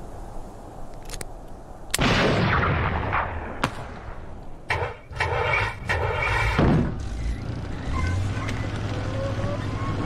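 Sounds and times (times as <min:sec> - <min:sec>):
truck engine rumbling: 0:04.7 - 0:10.0.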